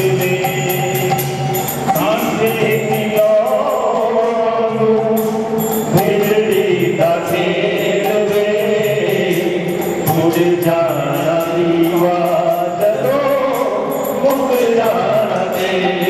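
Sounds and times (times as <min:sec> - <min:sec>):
man chanting into microphone: 0:00.0 - 0:01.3, 0:01.9 - 0:05.3, 0:05.9 - 0:16.0
small hand cymbals beating: 0:00.0 - 0:16.0.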